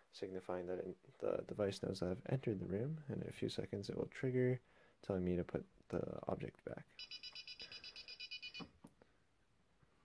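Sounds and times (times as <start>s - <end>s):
rapid high-pitched beeps: 7.0s - 8.7s.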